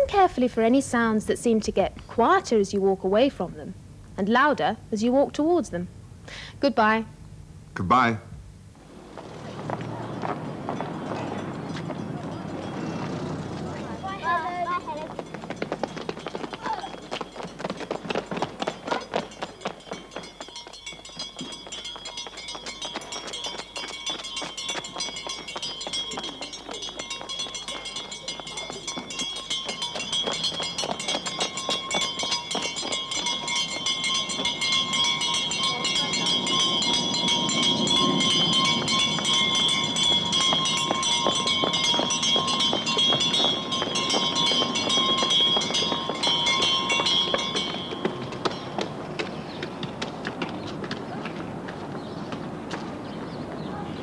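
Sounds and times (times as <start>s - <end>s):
children's running footsteps: 8.9s - 54.0s
handbell ringing rapidly: 10.7s - 48.9s.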